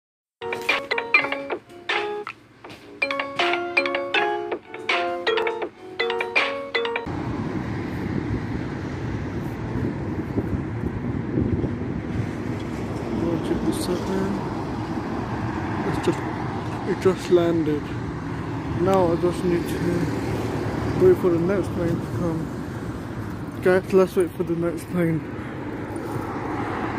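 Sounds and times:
bright chime-like music: 0.4 - 2.3, 3.0 - 7.1
road traffic rumble: 0.4 - 26.9.

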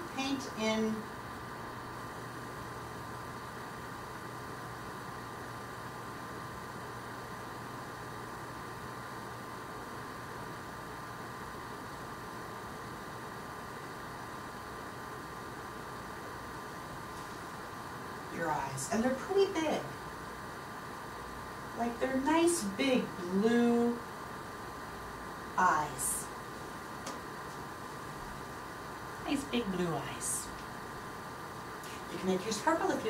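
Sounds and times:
background hiss: 0.0 - 33.0
faint hum: 0.0 - 33.0.

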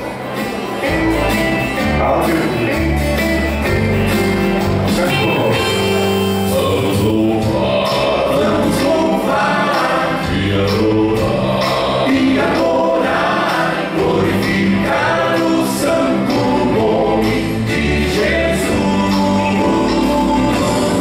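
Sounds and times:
male vocal quartet singing hymn: 6.5 - 21.0.

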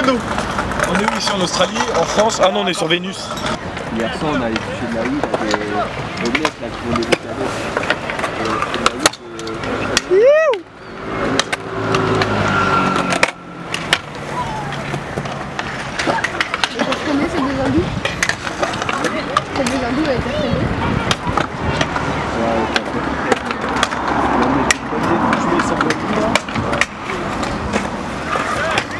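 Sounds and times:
scooter decks clacking on concrete: 0.0 - 28.9
scooter wheels rolling on concrete: 0.0 - 28.9
riders shouting: 9.9 - 10.8, 14.2 - 15.1, 28.2 - 28.9.

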